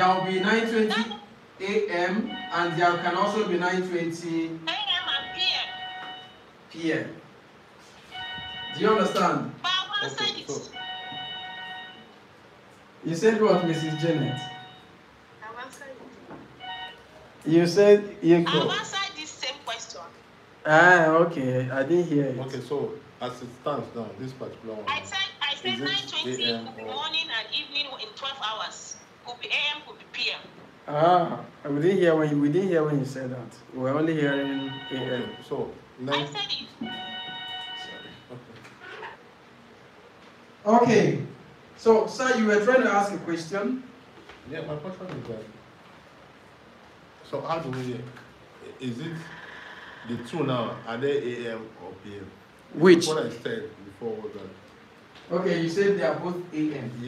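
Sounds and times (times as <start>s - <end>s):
chime-like electronic tone: 8.2s - 9.3s, 13.5s - 14.9s, 34.2s - 35.6s, 36.8s - 38.3s
steady electronic tone: 13.2s - 14.9s.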